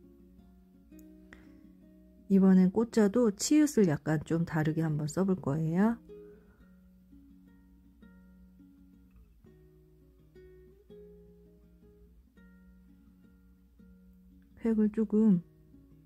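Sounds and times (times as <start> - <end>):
plucked string melody: 0.0 - 16.0.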